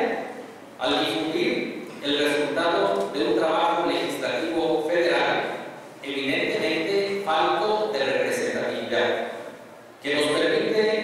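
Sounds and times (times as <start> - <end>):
man speaking into microphone: 0.0 - 11.0.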